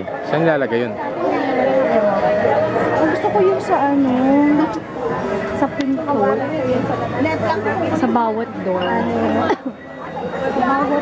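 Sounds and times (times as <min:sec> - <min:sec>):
chatter of people talking: 0:00.0 - 0:11.0.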